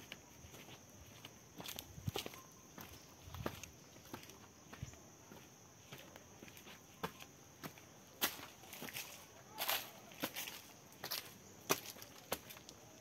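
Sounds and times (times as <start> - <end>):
footsteps on dry leaves: 0.5 - 12.8.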